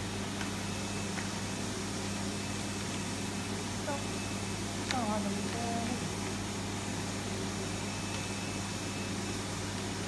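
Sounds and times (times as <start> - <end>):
cutting plotter hum and hiss: 0.0 - 10.0.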